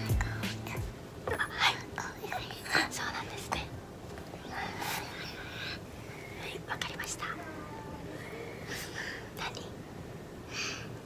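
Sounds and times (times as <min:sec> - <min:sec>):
soft whispering: 0:00.0 - 0:03.8, 0:04.4 - 0:09.8.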